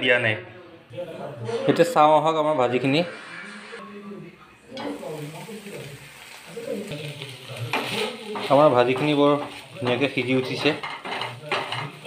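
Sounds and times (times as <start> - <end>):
vegetables sizzling in a wok: 4.7 - 12.0
wooden spatula scraping wok: 7.3 - 12.0.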